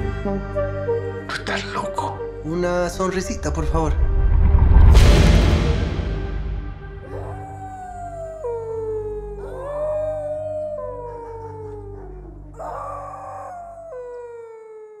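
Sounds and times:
low steady drone: 3.0s - 12.6s
dogs howling: 7.0s - 15.0s.

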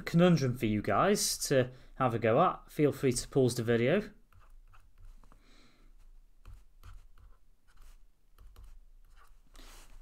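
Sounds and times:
stylus scratching on tablet: 4.3s - 5.4s, 6.0s - 10.0s.

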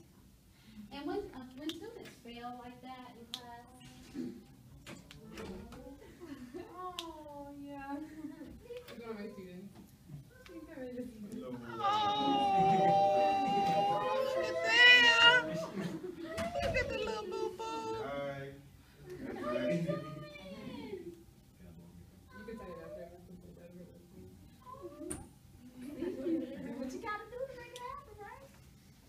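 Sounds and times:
indistinct talking: 11.5s - 18.2s
toddler vocal sound rising: 11.8s - 15.7s.

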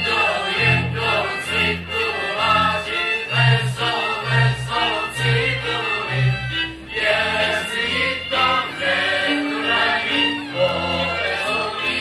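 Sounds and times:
group singing folk song: 0.0s - 12.0s.

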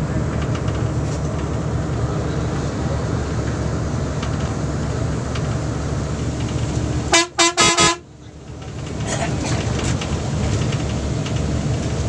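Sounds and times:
road and engine noise inside bus: 0.0s - 12.0s
vehicle horn blasts: 7.1s - 8.0s.

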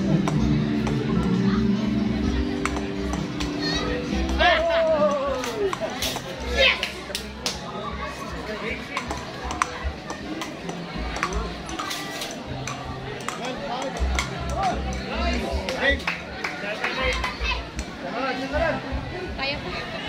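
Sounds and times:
background music: 0.0s - 20.0s
voices: 0.0s - 20.0s
table tennis ball clicks: 8.9s - 15.1s.

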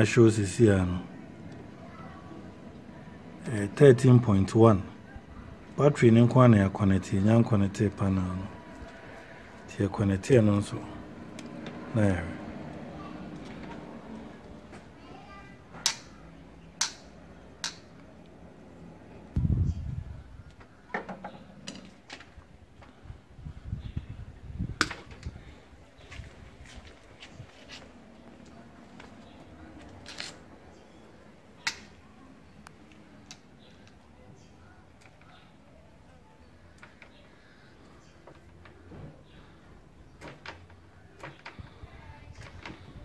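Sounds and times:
faint background hum: 0.0s - 43.0s.

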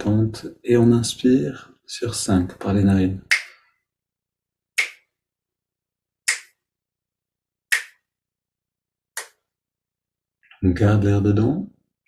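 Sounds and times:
finger snaps: 3.3s - 3.7s, 4.8s - 5.1s, 6.3s - 6.6s, 7.7s - 8.1s, 9.2s - 9.4s.

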